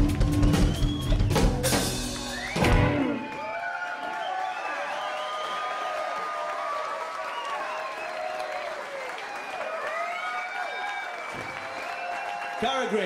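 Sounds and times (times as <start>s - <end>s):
audience clapping: 0.0s - 13.0s
shouts and whoops: 2.4s - 13.0s.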